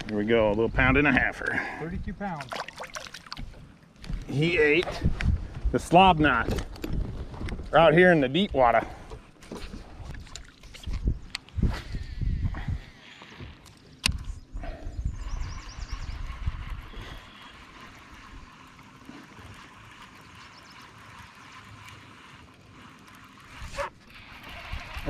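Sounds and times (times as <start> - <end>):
wind and water hiss: 0.0 - 25.0
wind buffeting microphone: 3.4 - 18.6.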